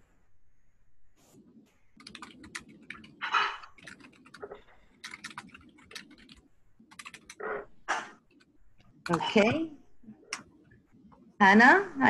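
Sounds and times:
typing on computer keyboard: 0:02.0 - 0:07.5, 0:08.2 - 0:09.6.

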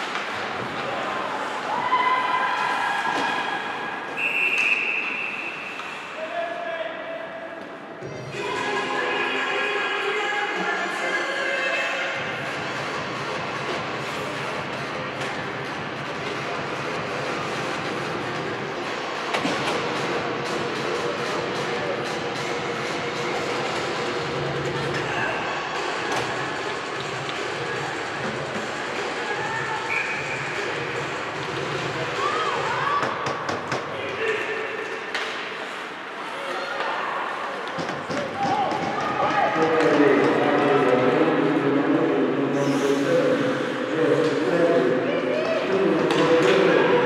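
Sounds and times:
voices and shouts in arena: 0:00.0 - 0:47.0
referee whistle blast: 0:04.2 - 0:05.9, 0:29.9 - 0:30.4.

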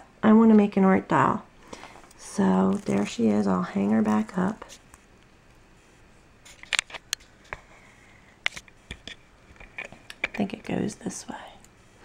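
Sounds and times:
small clicks and taps of handling: 0:08.4 - 0:10.4.

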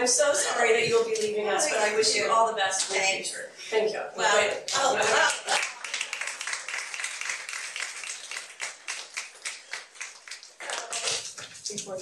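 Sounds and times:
applause from small group: 0:04.7 - 0:11.9.

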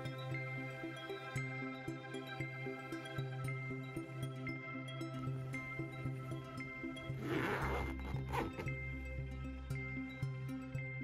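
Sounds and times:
background music: 0:00.0 - 0:11.0
zipper rasping: 0:07.2 - 0:08.8.

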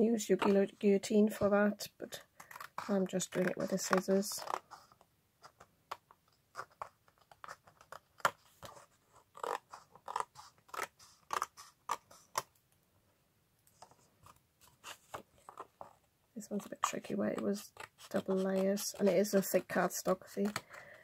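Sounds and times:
scissors cutting cardstock: 0:02.4 - 0:04.7, 0:09.4 - 0:12.5, 0:16.4 - 0:20.7.

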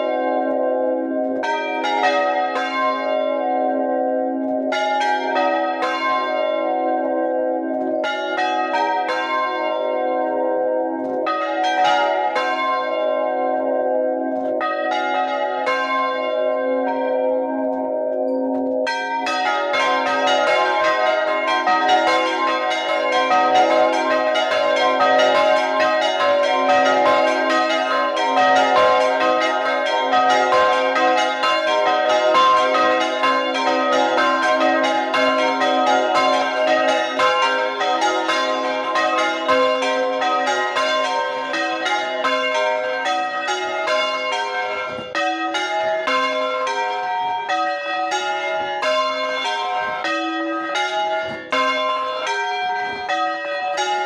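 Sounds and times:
church bells ringing: 0:00.0 - 0:54.0.

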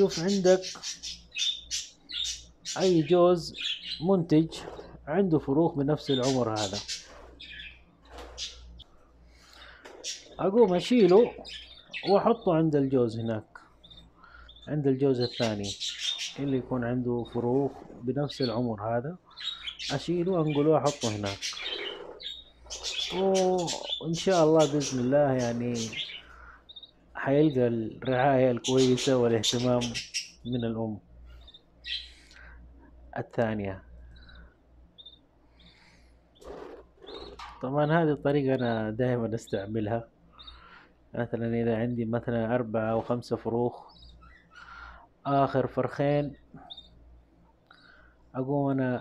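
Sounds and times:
budgerigars chirping: 0:00.0 - 0:05.0, 0:05.8 - 0:30.7, 0:31.3 - 0:32.6, 0:34.1 - 0:37.6, 0:40.3 - 0:41.0, 0:42.9 - 0:45.0, 0:46.6 - 0:47.0.

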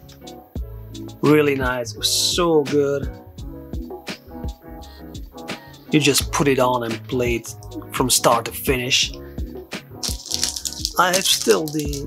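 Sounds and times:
instrumental music: 0:09.2 - 0:12.0.

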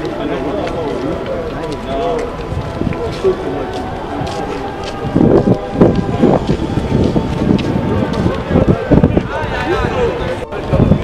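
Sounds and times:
background murmur: 0:00.0 - 0:11.0
people talking at once: 0:00.0 - 0:11.0.

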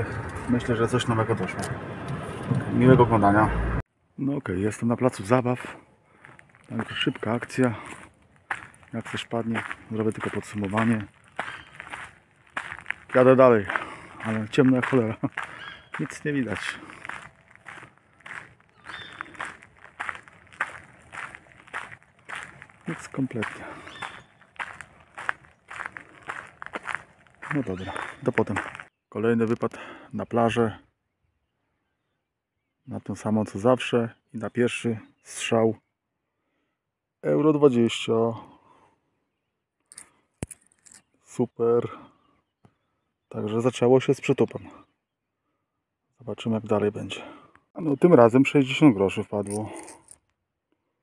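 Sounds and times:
footsteps walking: 0:06.2 - 0:28.9.

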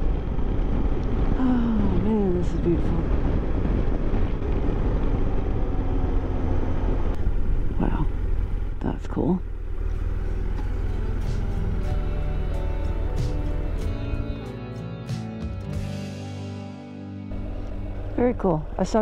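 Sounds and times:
motorcycle engine and wind rumble: 0:00.0 - 0:13.8
background music: 0:10.2 - 0:19.0.

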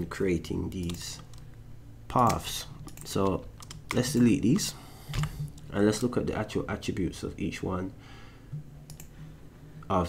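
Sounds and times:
faint low hum: 0:00.0 - 0:10.0
computer mouse clicks: 0:08.9 - 0:09.1.

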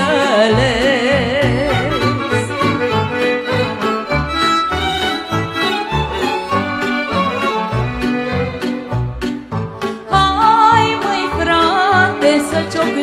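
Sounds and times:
folk dance band playing: 0:00.3 - 0:13.0.

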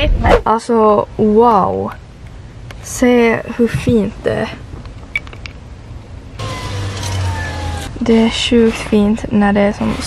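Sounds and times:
road noise: 0:01.2 - 0:10.0
car engine hum: 0:06.3 - 0:08.5.

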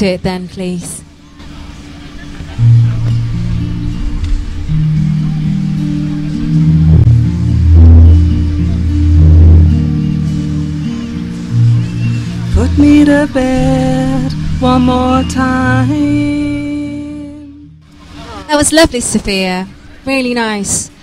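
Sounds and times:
acoustic guitar playing: 0:01.4 - 0:19.2.

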